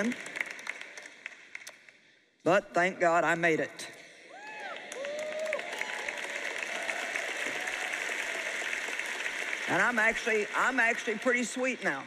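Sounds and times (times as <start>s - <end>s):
audience applause: 0.0s - 1.7s, 4.4s - 12.0s.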